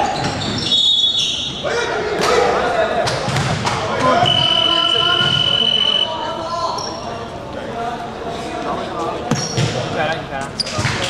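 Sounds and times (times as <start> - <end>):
players calling out: 0.0 - 9.6
high-pitched signal tone: 4.2 - 6.3.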